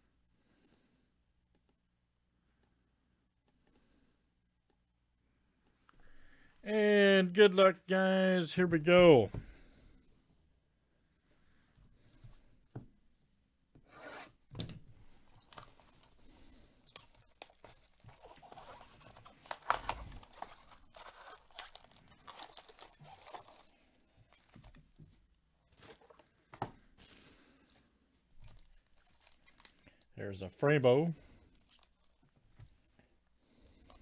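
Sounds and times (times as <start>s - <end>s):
packaging rustling: 15.1s - 24.9s, 28.4s - 30.1s
cardboard and wrapping tearing: 17.0s - 24.6s.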